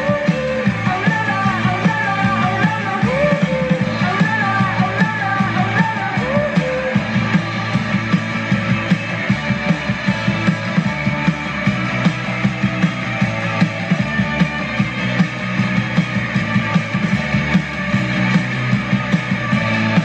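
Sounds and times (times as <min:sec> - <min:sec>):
bass guitar: 0:00.0 - 0:20.0
drum kit beat: 0:00.0 - 0:20.0
electric guitars: 0:00.0 - 0:20.0.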